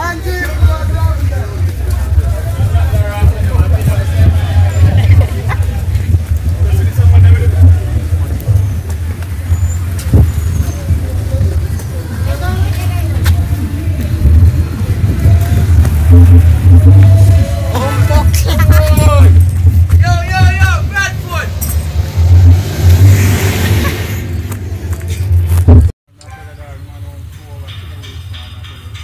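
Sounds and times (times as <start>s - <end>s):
heavy low rumble: 0.0s - 26.0s
car traffic: 0.0s - 28.7s
voices of passers-by: 0.0s - 29.0s.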